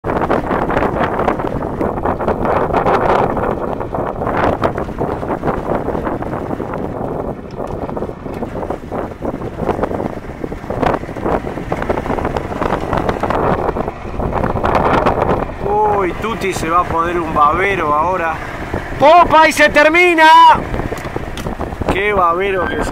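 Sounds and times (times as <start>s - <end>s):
wind buffeting microphone: 0.0s - 22.9s.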